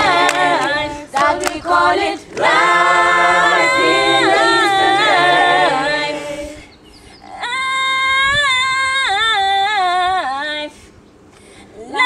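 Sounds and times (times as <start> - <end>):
high voice singing long note: 2.4 - 6.7.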